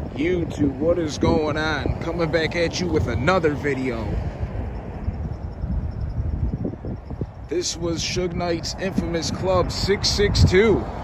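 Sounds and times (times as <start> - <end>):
road traffic: 0.0 - 11.0
wind buffeting microphone: 0.0 - 11.0.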